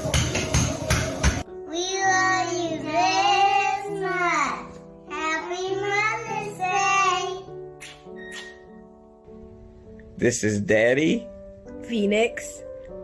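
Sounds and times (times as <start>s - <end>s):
child singing: 1.7s - 7.6s.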